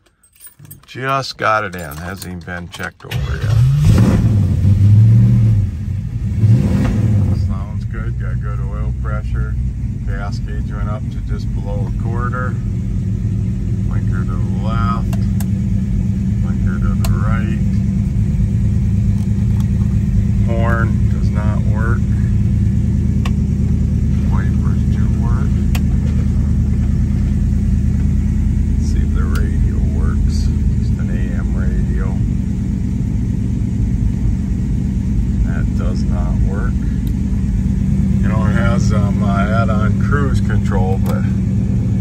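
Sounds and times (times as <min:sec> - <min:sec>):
car engine idling: 0:00.0 - 0:42.0.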